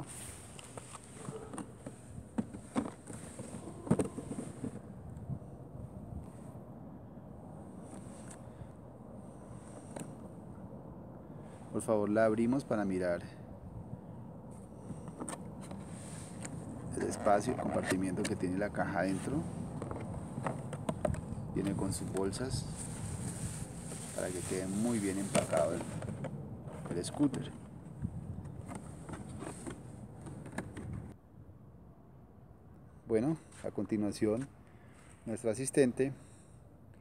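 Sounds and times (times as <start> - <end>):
hands handling cardboard box: 22.9 - 27.5.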